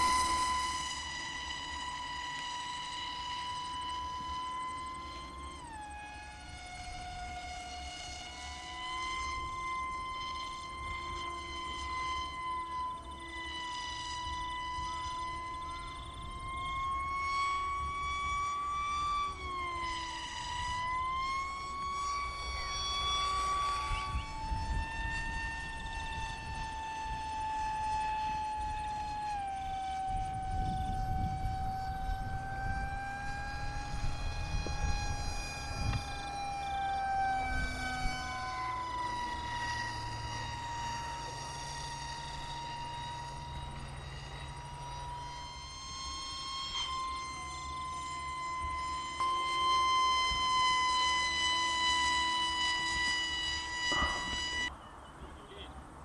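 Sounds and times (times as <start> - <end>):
model aeroplane motor whining: 0.0 - 56.0.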